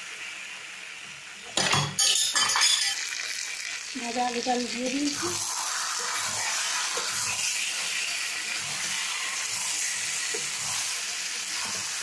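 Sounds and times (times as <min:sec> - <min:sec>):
curry sizzling: 0:00.0 - 0:12.0
spatula scraping pan: 0:05.1 - 0:12.0.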